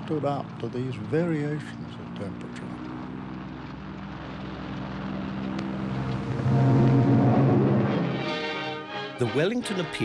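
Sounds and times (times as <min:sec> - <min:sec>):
aircraft engines running: 0:00.0 - 0:10.0.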